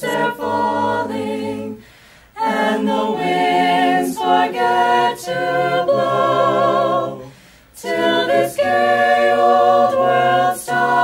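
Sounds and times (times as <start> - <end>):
choir singing a cappella: 0.0 - 11.0.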